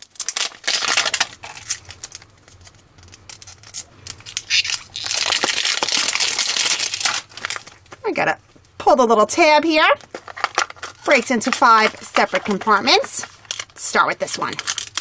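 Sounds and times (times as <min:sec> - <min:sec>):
plastic wrapper crinkling: 0:00.0 - 0:08.1, 0:10.0 - 0:15.0.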